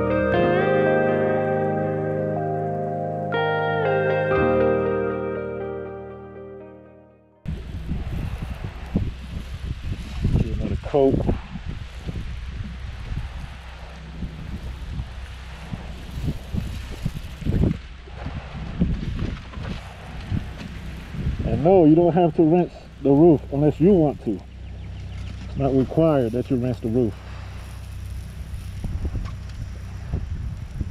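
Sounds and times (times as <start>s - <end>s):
background music: 0.0s - 7.4s
wind buffeting microphone: 7.5s - 30.9s.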